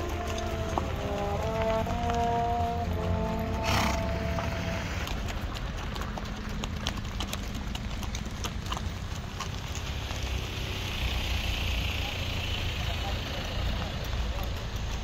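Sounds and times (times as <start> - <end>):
held brass notes: 0.0 - 5.2
horse hooves clip-clopping on dirt: 0.0 - 15.0.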